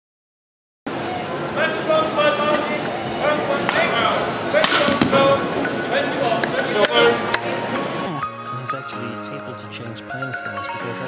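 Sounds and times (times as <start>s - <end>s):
racket striking shuttlecock: 3.6s - 7.5s.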